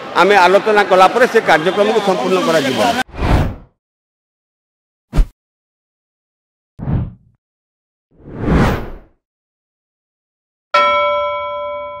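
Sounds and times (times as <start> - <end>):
bell-like ding: 10.8 - 12.0.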